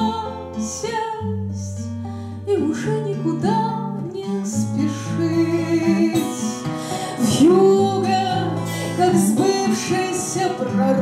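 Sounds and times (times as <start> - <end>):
strummed acoustic guitar: 0.0 - 11.0
woman singing: 0.0 - 11.0.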